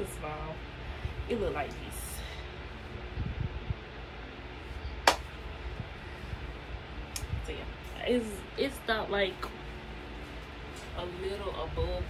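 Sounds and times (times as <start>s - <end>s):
microphone handling rumble: 2.8s - 4.0s, 4.6s - 8.1s
fabric rustle: 9.2s - 12.0s.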